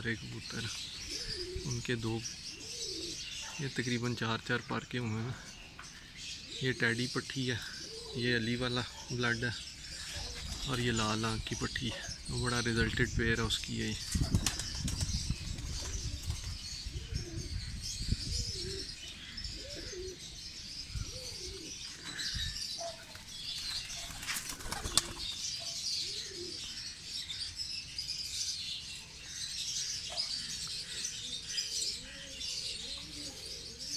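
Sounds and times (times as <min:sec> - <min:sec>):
pigeons cooing: 0:00.0 - 0:04.1, 0:05.1 - 0:13.2, 0:13.9 - 0:27.3, 0:29.7 - 0:33.9
wings flapping and scuffling: 0:14.1 - 0:16.6, 0:22.9 - 0:25.4.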